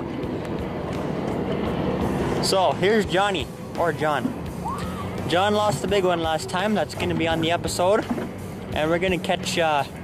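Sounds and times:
boat motor humming: 0.0 - 10.0
broad rushing noise: 0.0 - 10.0.

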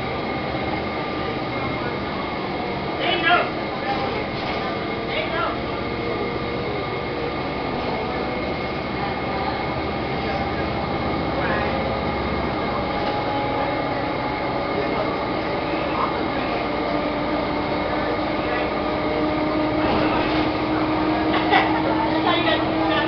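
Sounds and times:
bus engine and road drone: 0.0 - 23.0.

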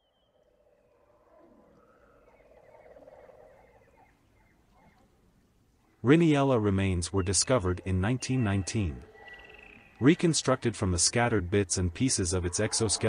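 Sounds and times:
faint ambient swell: 0.0 - 13.0.

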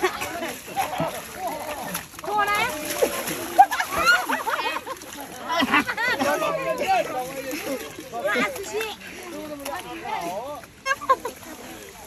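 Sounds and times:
mud splashing and slapping: 0.0 - 12.0.

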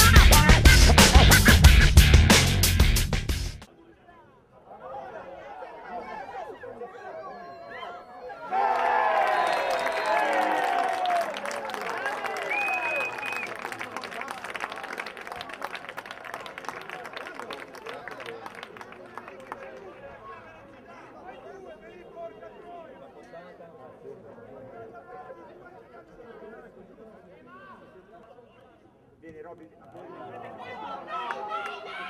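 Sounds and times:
people shouting and cheering: 0.0 - 3.0, 4.6 - 13.9, 30.0 - 32.0
scattered clapping: 9.2 - 20.0.

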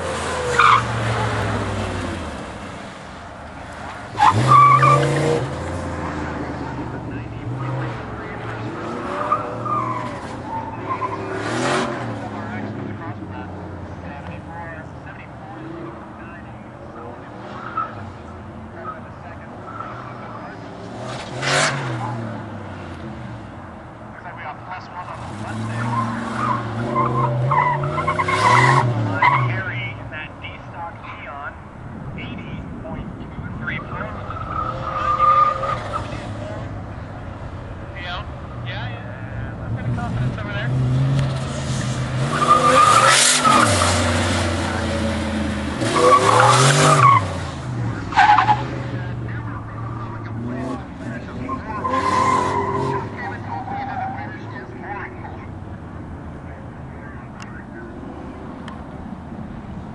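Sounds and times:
tyres squealing: 0.0 - 2.2, 3.9 - 13.0, 18.8 - 22.3, 25.2 - 29.8, 33.8 - 37.1, 37.9 - 55.5
car engine revving: 0.0 - 31.3, 31.9 - 59.9.

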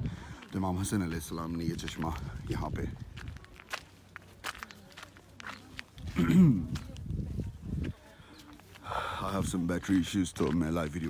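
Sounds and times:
footsteps on sandy stony ground: 0.0 - 11.0.

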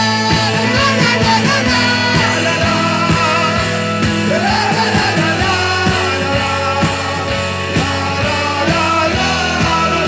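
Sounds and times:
live band playing: 0.0 - 10.0
person singing: 0.0 - 10.0.

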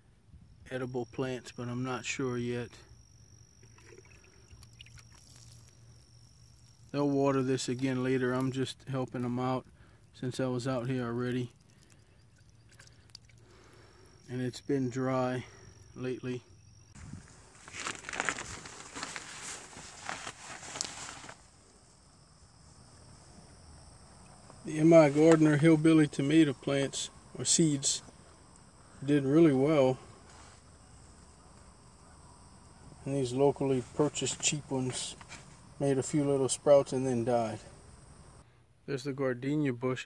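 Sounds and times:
water trickling onto soil: 3.6 - 14.6, 17.2 - 21.4
plastic mesh cover crinkling: 17.1 - 21.6.

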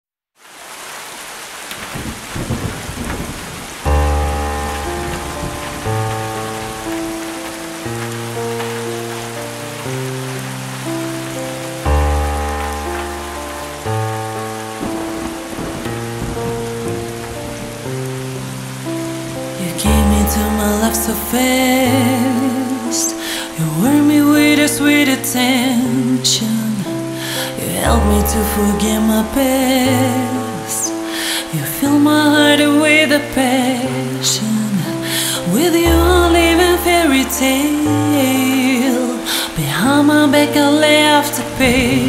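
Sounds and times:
steady rain: 0.4 - 42.0
slow keyboard chords: 3.8 - 42.0.

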